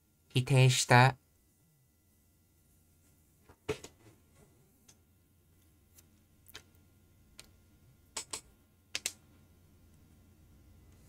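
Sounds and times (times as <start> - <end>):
keyboard keys clicking: 8.1 - 9.2.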